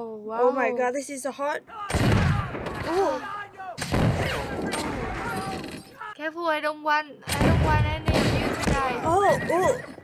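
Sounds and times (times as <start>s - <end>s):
voices: 0.0s - 10.0s
musket gunshots: 1.9s - 3.2s, 3.8s - 5.9s, 7.3s - 9.1s.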